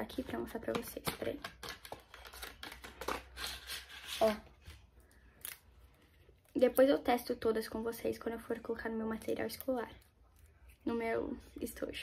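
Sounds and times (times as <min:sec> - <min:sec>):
plastic pens rustling: 0:00.0 - 0:06.9.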